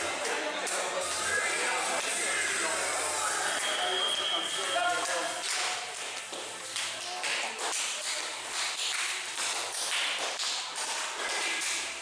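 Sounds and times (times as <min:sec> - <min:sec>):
faint voices in a hall: 0:00.0 - 0:12.0.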